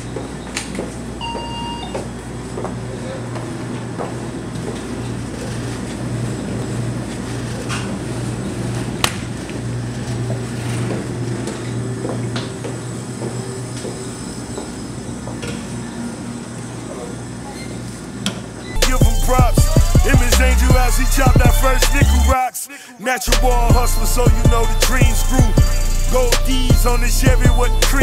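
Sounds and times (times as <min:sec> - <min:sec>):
short electronic beep: 0:01.2 - 0:02.0
steady low hum: 0:18.8 - 0:22.4, 0:23.3 - 0:28.0.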